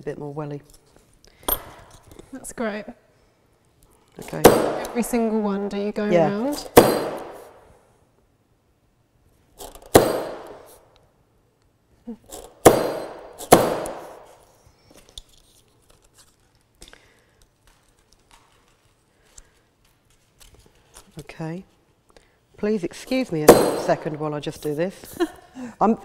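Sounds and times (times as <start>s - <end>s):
metallic hammer strikes: 4.4s - 5.2s, 6.6s - 7.6s, 9.6s - 10.7s, 12.6s - 14.3s, 23.4s - 24.2s.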